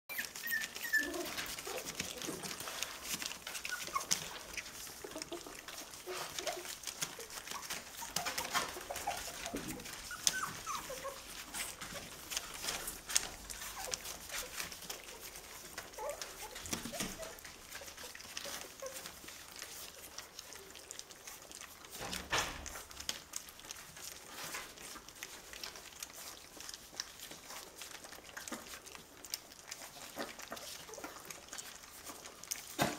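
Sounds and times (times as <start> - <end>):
puppies squeaking: 0.1 - 32.8
puppies eating from bowls: 0.1 - 32.9.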